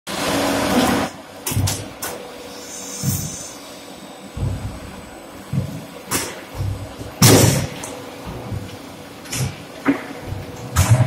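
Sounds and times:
faint machine hum: 0.1s - 11.0s
heavy machine knocks and clunks: 1.4s - 2.1s, 4.4s - 11.0s
loud rushing hiss: 2.4s - 7.8s.

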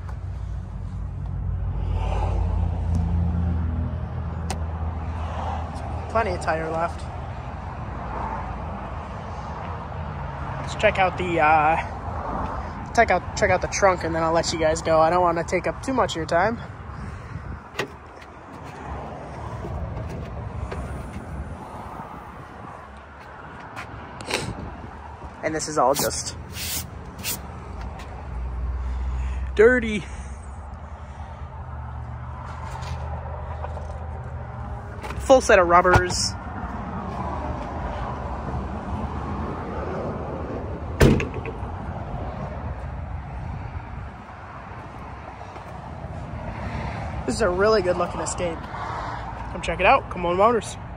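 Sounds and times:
outdoor background noise: 0.0s - 50.9s
car liftgate thump: 41.0s - 41.6s.

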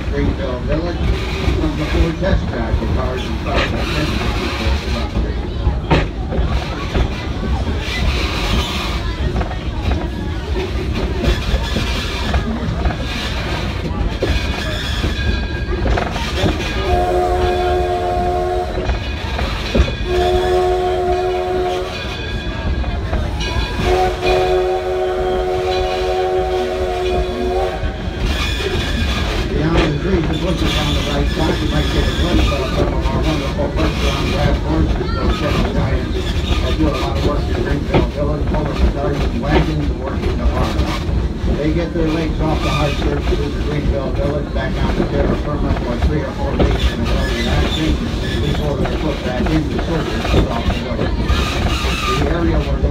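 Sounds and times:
train rumbling and clacking on track: 0.0s - 52.9s
steam locomotive whistle blasts: 16.8s - 18.9s, 20.0s - 22.1s, 23.8s - 27.9s.

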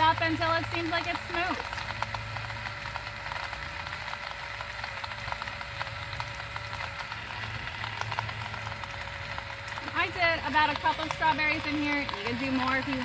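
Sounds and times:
ice rattling in blender cup: 0.0s - 13.0s
personal blender motor humming: 0.0s - 13.0s.

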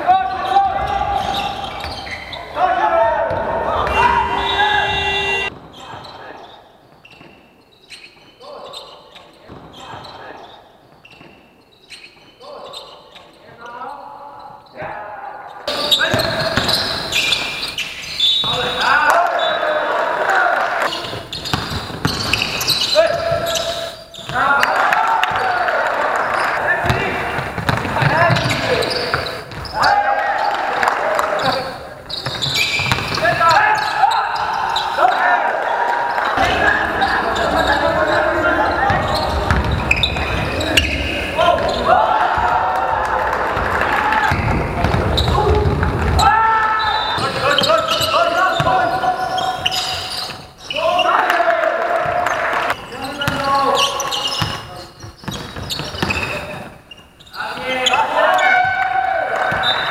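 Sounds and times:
players calling out: 0.0s - 59.9s
basketball bouncing on court: 3.2s - 6.2s, 16.0s - 17.5s, 20.9s - 25.6s, 26.3s - 29.8s, 31.2s - 34.9s, 37.4s - 42.6s, 43.4s - 50.4s, 51.9s - 56.8s, 58.3s - 59.9s.

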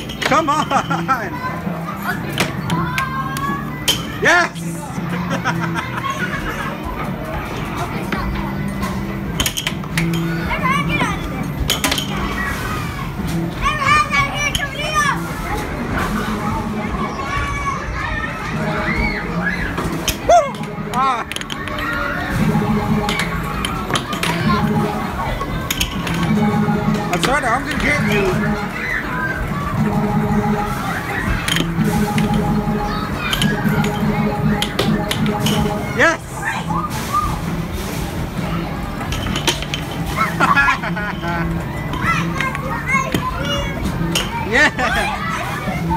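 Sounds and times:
arcade background music: 0.0s - 45.9s
arcade game sounds: 0.0s - 45.9s
arcade game music: 20.4s - 38.4s.

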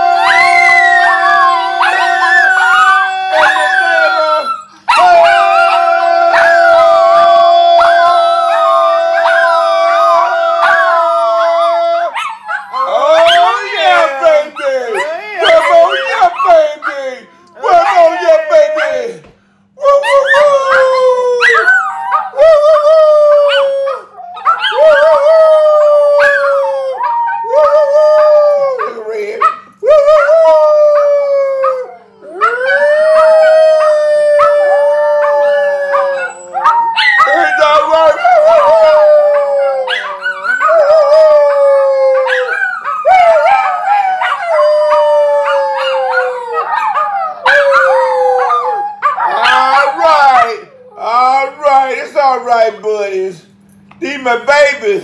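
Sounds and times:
dog howling: 0.0s - 19.2s, 19.8s - 51.4s.

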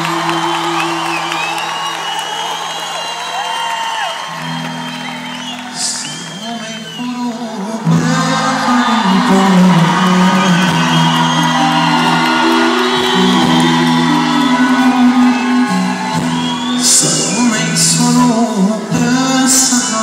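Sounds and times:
live band music: 8.0s - 20.0s.

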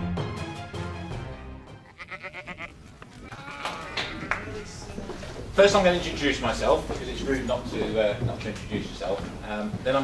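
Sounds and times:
sheep bleating: 1.8s - 4.8s.

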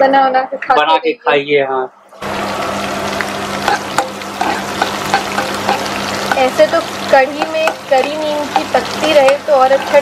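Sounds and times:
onions sizzling in oil: 2.1s - 10.0s.

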